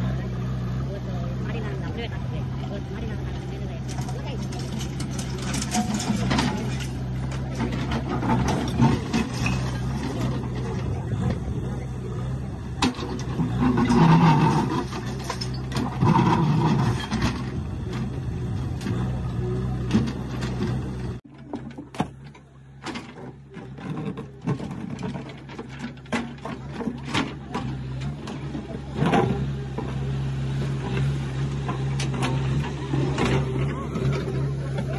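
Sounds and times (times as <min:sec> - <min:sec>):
crowd voices: 0:00.0 - 0:34.9
diesel engine running: 0:00.0 - 0:34.9.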